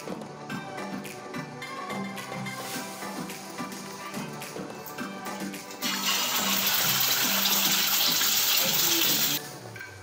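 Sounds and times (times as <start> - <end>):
background music: 0.0 - 10.0
egg sizzling in hot oil: 5.7 - 9.4.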